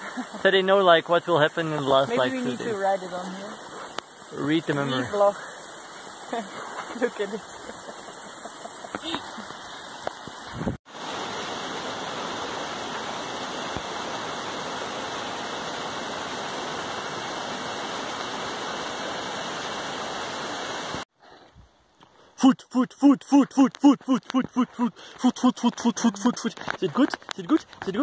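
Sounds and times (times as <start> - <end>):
waterfall splashing into pool: 4.1 - 21.1.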